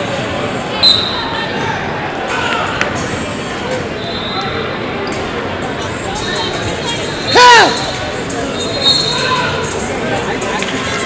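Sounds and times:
voices in a hall: 0.0 - 11.0
shrill whistle: 0.8 - 1.2, 8.5 - 9.4.

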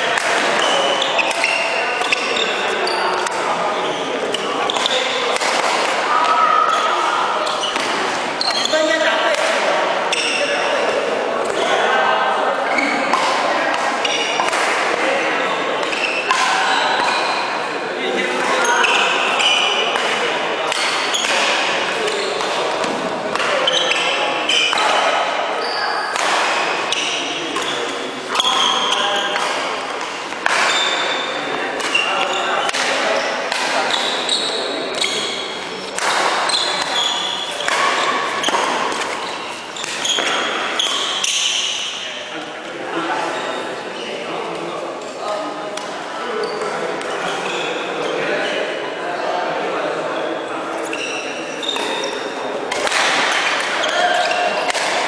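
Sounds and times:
racket hitting shuttlecock: 0.1 - 2.6, 4.3 - 6.1, 6.7 - 8.7, 9.3 - 10.4, 13.1 - 15.0, 15.8 - 17.3, 18.4 - 25.1, 26.1 - 31.2, 31.8 - 42.0, 51.6 - 55.0
sneakers squeaking on wooden floor: 0.4 - 5.3, 6.1 - 9.0, 10.1 - 10.6, 14.0 - 14.5, 15.8 - 17.6, 18.6 - 19.9, 20.8 - 29.5, 30.5 - 42.1, 43.3 - 44.2, 46.4 - 48.2, 50.8 - 55.0.

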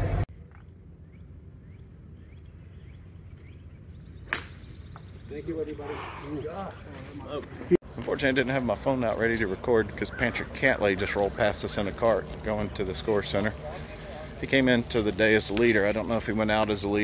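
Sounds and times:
golf club striking ball: 4.3 - 5.1
spectators talking: 5.3 - 17.0.

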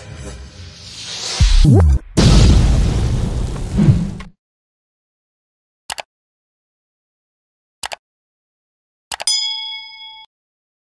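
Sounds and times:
bell ding ringing: 9.3 - 10.3.

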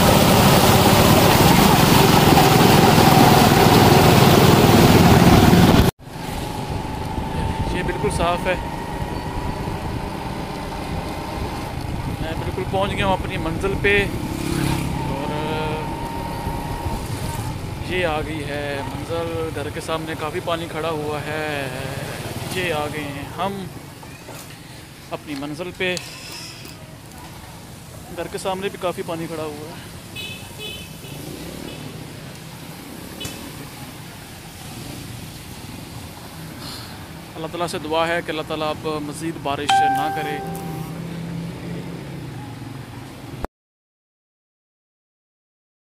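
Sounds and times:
motorcycle engine: 0.0 - 18.5
tyres on wet road: 0.0 - 43.5
short high beep: 39.7 - 41.1
steady high-pitched tone: 39.7 - 41.2.

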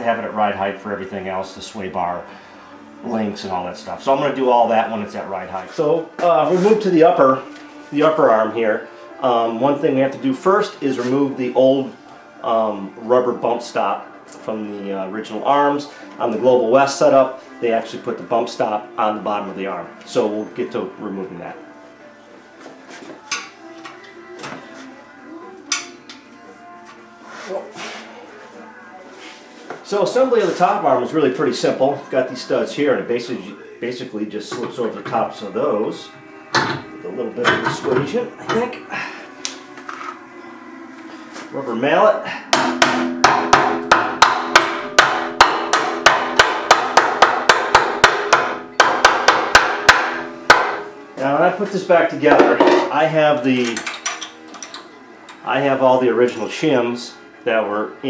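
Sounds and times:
rubber mallet striking steel: 42.5 - 50.9.

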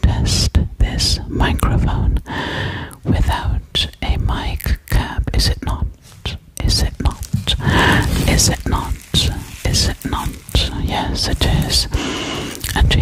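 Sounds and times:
woman whispering: 0.0 - 13.0
breath puffs on microphone: 7.5 - 8.4, 11.0 - 12.8.

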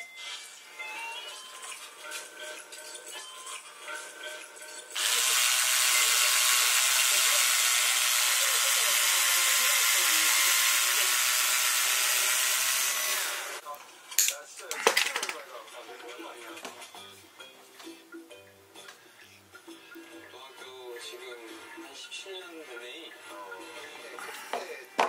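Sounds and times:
cordless screwdriver running: 5.0 - 13.6.

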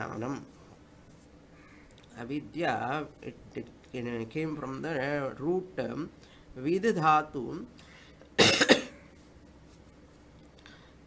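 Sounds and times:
person coughing: 8.4 - 9.0.

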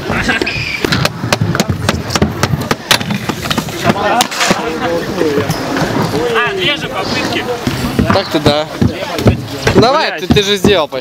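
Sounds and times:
sharp clacks and knocks: 0.8 - 4.6.

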